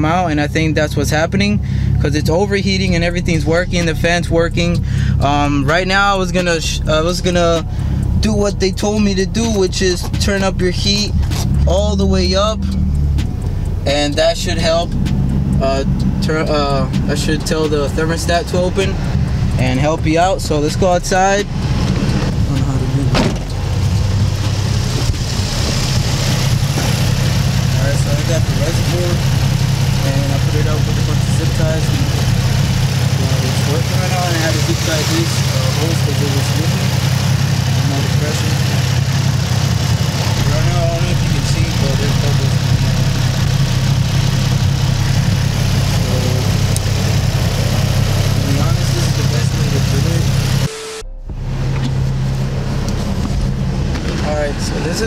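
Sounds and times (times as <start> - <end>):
car engine idling: 0.0 - 55.0.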